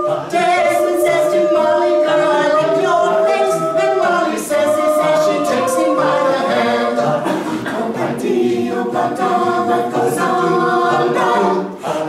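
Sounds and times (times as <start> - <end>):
a cappella group singing in harmony: 0.0 - 12.0.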